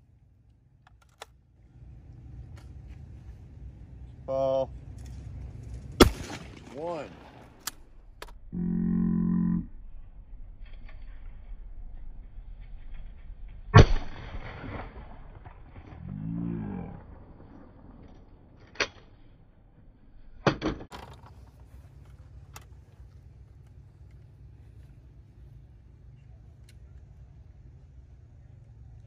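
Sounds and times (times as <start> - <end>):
metallic clicks of gun opening: 0.8 - 1.4
shotgun shot: 6.0 - 7.6, 13.8 - 16.0.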